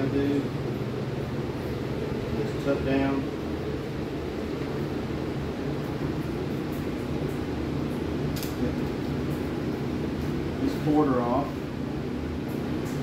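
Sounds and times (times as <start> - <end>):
electric fan humming: 0.0 - 13.0.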